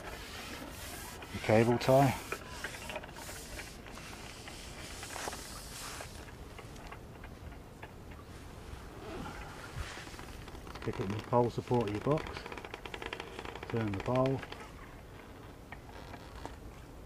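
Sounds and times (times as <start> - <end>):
fishing pole rustles and ticks: 0.0 - 17.0
low outdoor hiss: 0.0 - 17.0.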